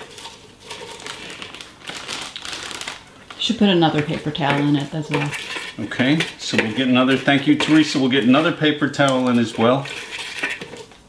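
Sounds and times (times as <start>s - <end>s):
lettuce leaves rustling: 0.0s - 10.9s
plastic bag crinkling: 0.0s - 11.0s.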